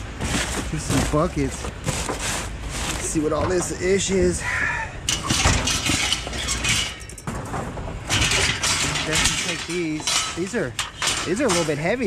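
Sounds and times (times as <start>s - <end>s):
metal clattering and scraping: 0.0s - 4.4s, 5.0s - 12.0s.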